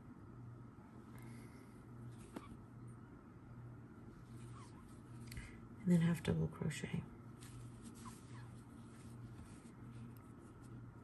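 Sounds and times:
low steady hum: 0.0 - 11.0
yarn rustling over crochet hook: 7.4 - 11.0.

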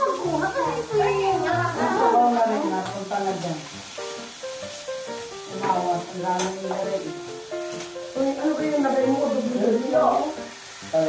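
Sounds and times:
background music: 0.0 - 11.0
meat sizzling in a grill pan: 0.0 - 11.0
utensils stirring: 0.0 - 11.0.

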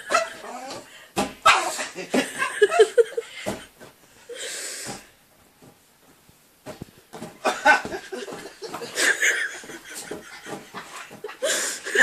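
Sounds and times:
dog barking: 0.1 - 0.4, 1.4 - 1.8.

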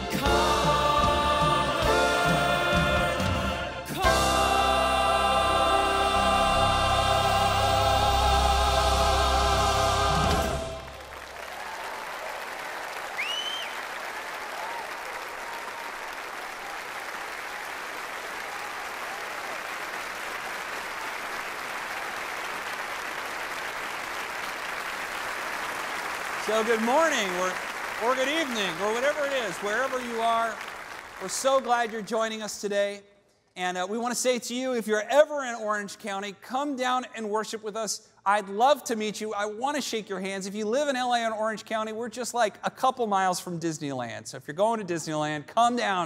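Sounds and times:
choir and soloist singing: 0.0 - 11.1
people applauding: 10.1 - 32.6
short whistle: 13.2 - 13.8.

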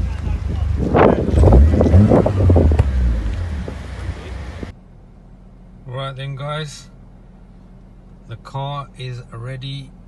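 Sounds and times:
wind rumbling on microphone: 0.2 - 3.9.

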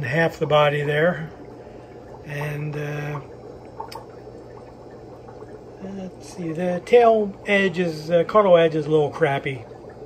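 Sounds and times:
aquarium water trickling and bubbling: 0.0 - 10.0
faint low hum: 0.0 - 10.0.

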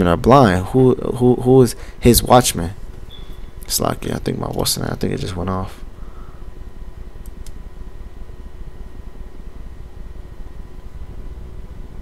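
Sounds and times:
low hum and hiss: 0.0 - 12.0
faint thin steady tones: 0.8 - 12.0.

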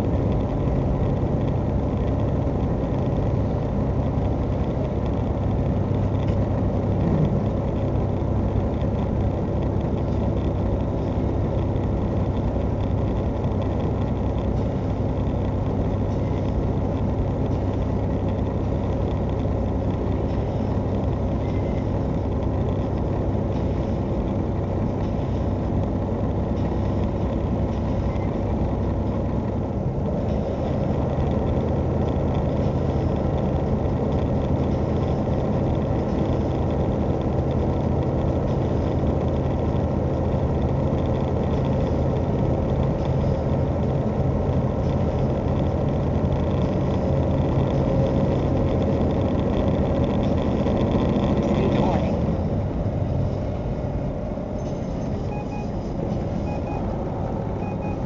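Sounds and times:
truck engine and road noise: 0.0 - 58.0.

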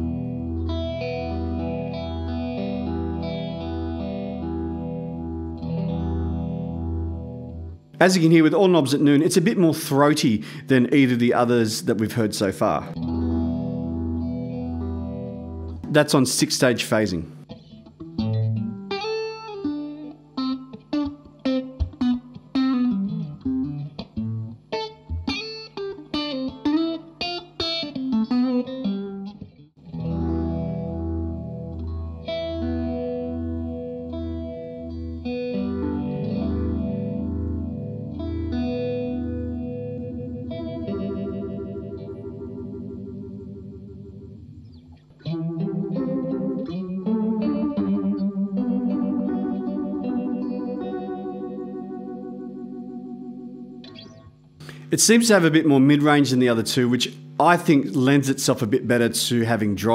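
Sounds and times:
electric guitar with phaser: 0.0 - 8.3, 12.8 - 16.4, 17.2 - 55.0.

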